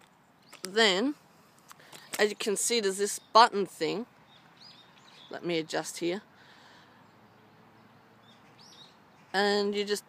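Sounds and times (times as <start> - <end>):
faint outdoor hush: 0.0 - 10.0
faint bird chirp: 4.2 - 5.7, 6.6 - 9.6.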